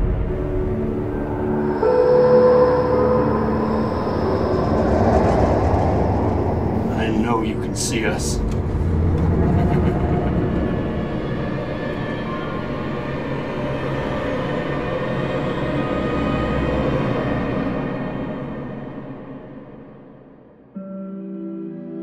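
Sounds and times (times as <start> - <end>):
low rumble: 0.0 - 14.4
eerie sustained drone: 0.0 - 22.0.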